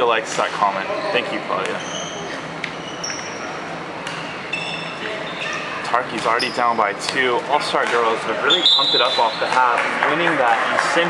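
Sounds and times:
faint voices: 0:00.0 - 0:11.0
sneakers squeaking on floor: 0:00.9 - 0:07.0, 0:08.4 - 0:09.6.

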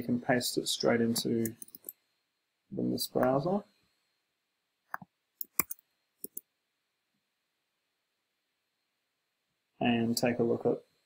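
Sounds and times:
computer clicks: 0:04.9 - 0:06.5.

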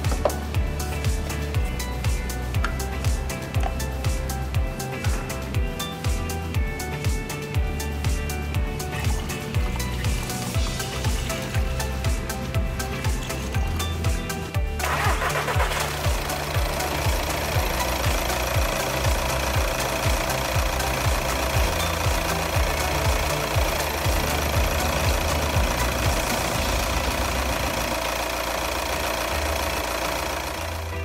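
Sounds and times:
background music with beat: 0:00.0 - 0:31.0
diesel engine idling: 0:00.0 - 0:31.0.

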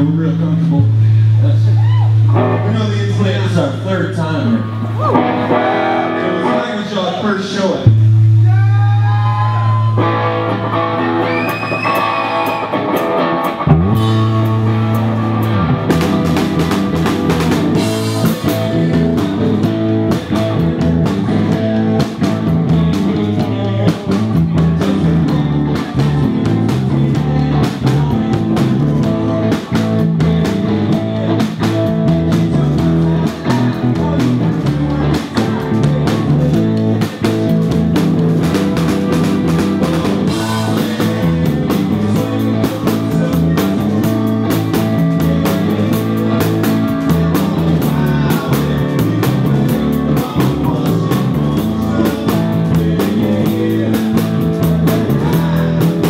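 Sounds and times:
rock band playing: 0:00.0 - 0:56.0
ringing sliding guitar notes: 0:04.4 - 0:06.9.

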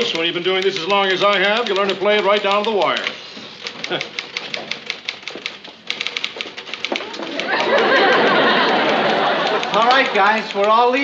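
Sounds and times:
typewriter typing: 0:00.0 - 0:11.0.

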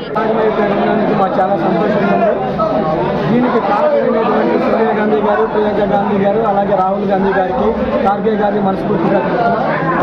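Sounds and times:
man talking: 0:00.0 - 0:10.0
voices chattering: 0:00.0 - 0:10.0.

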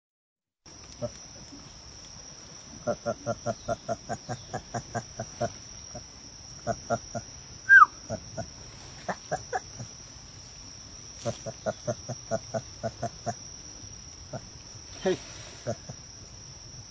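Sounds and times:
high insect drone: 0:00.7 - 0:16.9
gibbon calls: 0:07.7 - 0:08.2.

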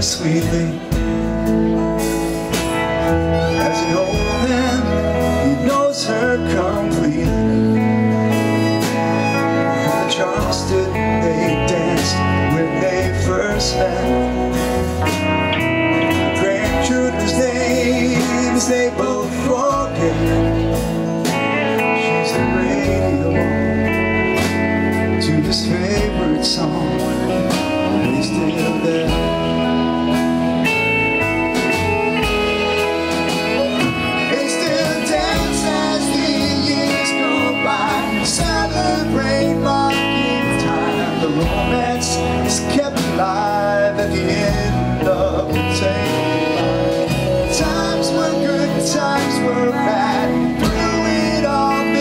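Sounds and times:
drums: 0:00.0 - 0:52.0
electric guitar: 0:00.0 - 0:52.0
folk-rock band playing: 0:00.0 - 0:52.0
held lead guitar notes: 0:00.0 - 0:52.0.

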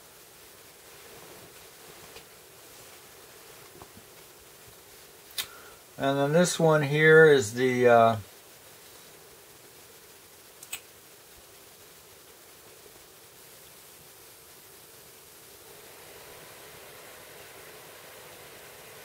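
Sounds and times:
faint room hiss: 0:00.0 - 0:19.0
sharp click: 0:10.6 - 0:10.9.

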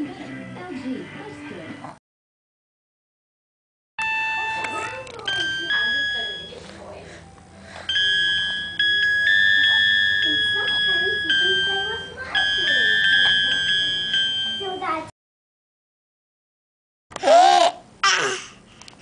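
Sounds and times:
electronic toy keyboard notes: 0:04.0 - 0:06.7, 0:07.7 - 0:15.0.

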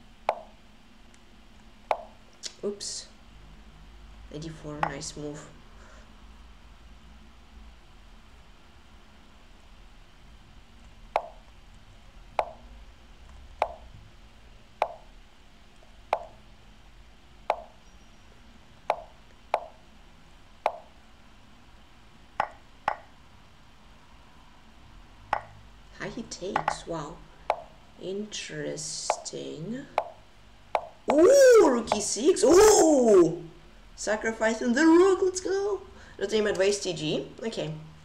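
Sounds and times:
clicky chess move sounds: 0:18.9 - 0:19.8, 0:20.6 - 0:20.9, 0:22.4 - 0:23.1, 0:26.6 - 0:26.8, 0:29.1 - 0:29.3.

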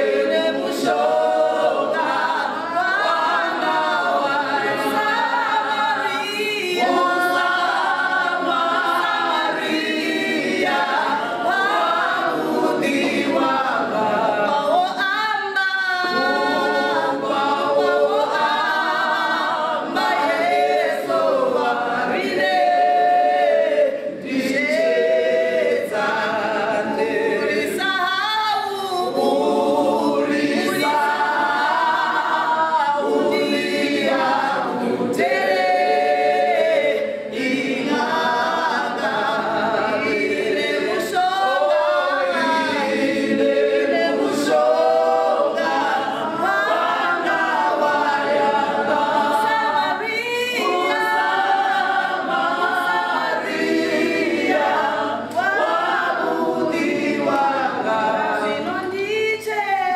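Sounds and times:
women singing in harmony: 0:00.0 - 0:59.9.

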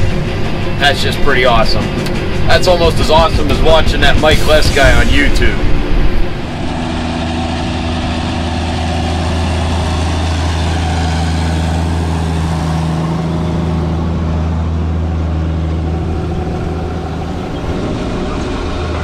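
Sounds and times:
tractor diesel engine droning: 0:00.0 - 0:19.0.

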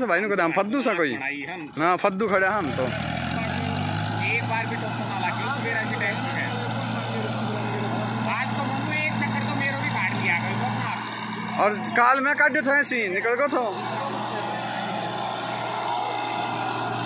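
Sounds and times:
tractor diesel engine revving: 0:00.0 - 0:17.0
distant voices calling out: 0:01.6 - 0:17.0.

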